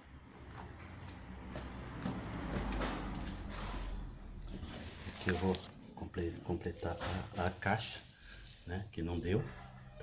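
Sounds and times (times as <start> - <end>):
rustling and scraping of plants: 2.6 - 5.8.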